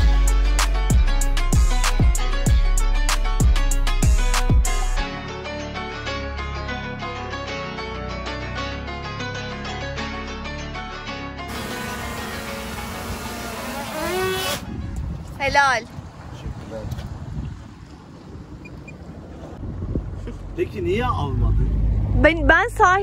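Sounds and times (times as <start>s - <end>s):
guitar music: 0.0s - 14.4s
motorboat engine: 11.5s - 14.8s, 15.7s - 23.0s
wind rumble: 12.4s - 23.0s.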